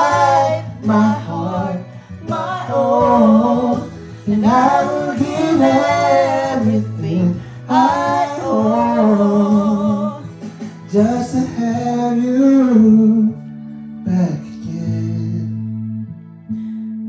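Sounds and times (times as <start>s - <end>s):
low musical accompaniment: 0.0s - 17.0s
man singing a slow ballad: 8.4s - 15.8s.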